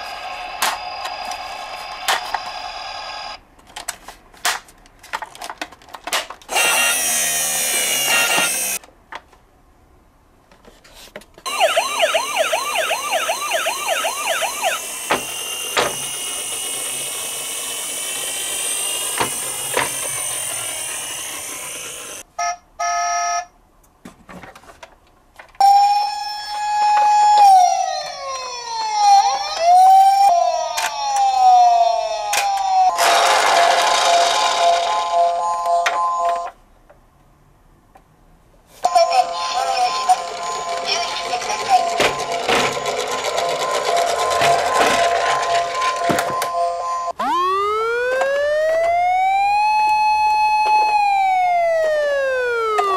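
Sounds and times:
toy siren falling wails: 6.5s - 8.8s, 11.5s - 22.2s, 25.6s - 36.5s, 39.0s - 52.9s
toy siren rising yelp: 6.5s - 8.8s, 11.5s - 22.2s, 25.6s - 36.4s, 38.9s - 52.9s.

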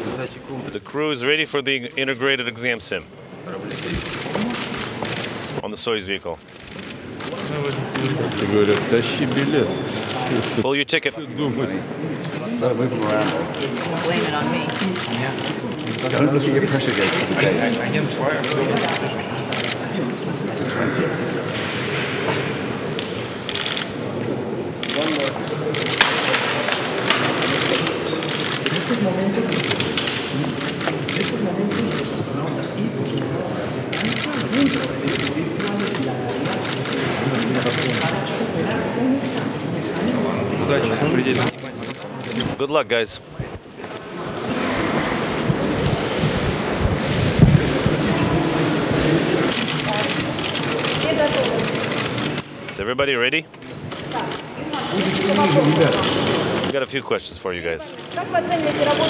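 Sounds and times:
crowd chatter: 0.0s - 59.0s
camera shutters clicking rapidly: 13.1s - 19.8s, 24.8s - 32.1s, 33.9s - 38.2s, 49.0s - 52.5s
loud rushing noise: 44.2s - 51.0s.

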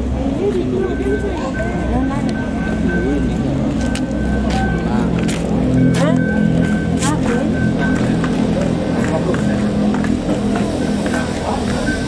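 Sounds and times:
people talking: 0.0s - 12.0s
steady low hum: 0.0s - 12.0s
thin high steady tone: 0.7s - 12.0s.

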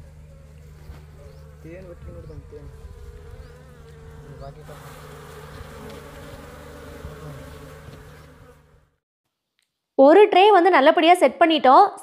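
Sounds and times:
honey bees buzzing: 0.0s - 9.0s.

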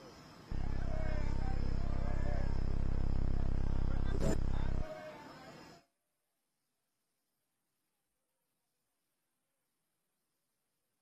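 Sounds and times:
low mains hum: 0.0s - 5.8s.

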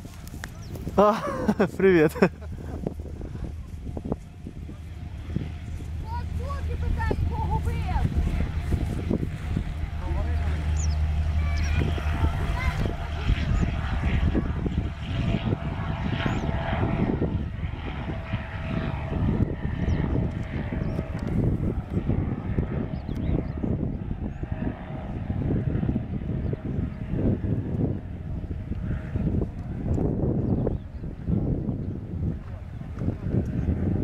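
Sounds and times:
propeller aircraft flying past: 0.0s - 34.0s.

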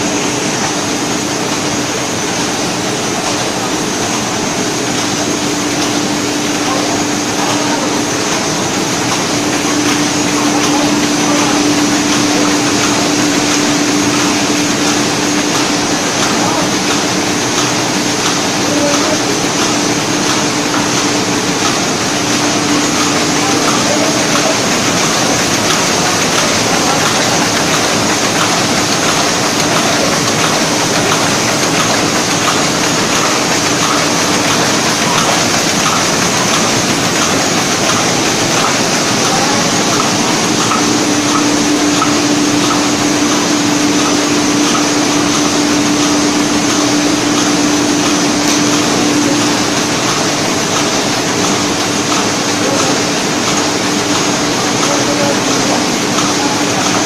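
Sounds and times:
printing press mechanical drone: 0.0s - 57.0s.

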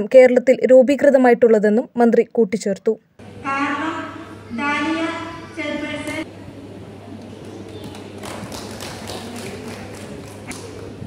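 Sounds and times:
small group clapping: 7.2s - 11.0s.

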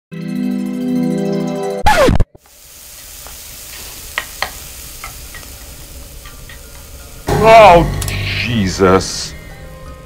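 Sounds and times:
food sizzling in pan: 2.0s - 10.0s
intro music: 6.9s - 10.0s.

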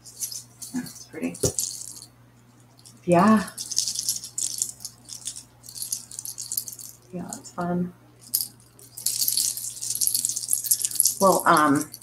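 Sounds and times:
beads and shells rattling: 0.0s - 7.5s, 8.2s - 12.0s.

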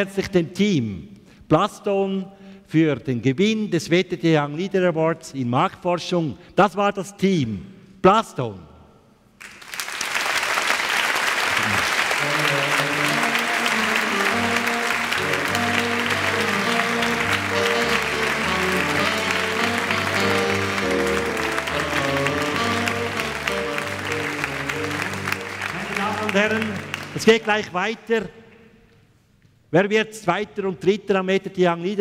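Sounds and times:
audience applauding: 9.4s - 27.7s
stage music with bass line: 11.6s - 27.3s.

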